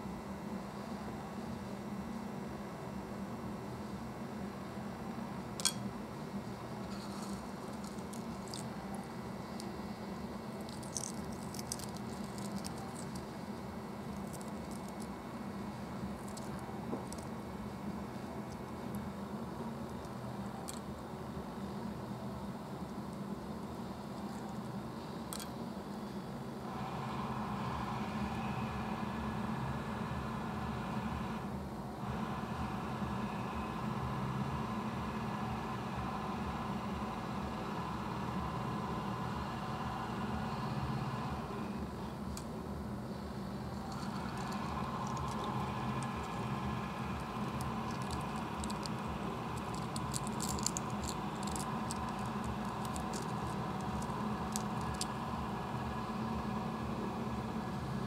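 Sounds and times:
low hum and hiss: 0.0 - 58.0.

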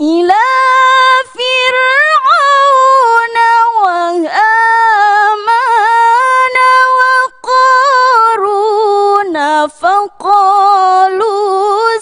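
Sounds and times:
woman reciting melodically: 0.0 - 12.0.

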